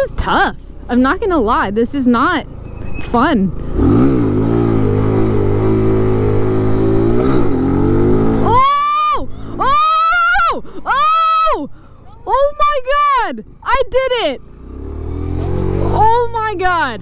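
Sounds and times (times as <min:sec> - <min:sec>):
mini bike engine revving: 0:03.6 - 0:10.2, 0:14.4 - 0:17.0
person yelling excitedly: 0:08.4 - 0:14.2, 0:15.8 - 0:17.0.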